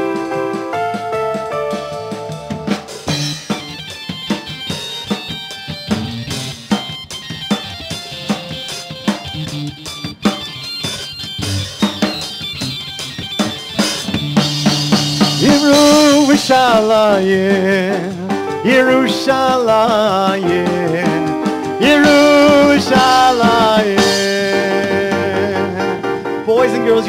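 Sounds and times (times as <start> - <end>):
drum kit beat: 0.0 - 27.0
live band playing: 0.0 - 27.0
person singing: 15.4 - 27.0.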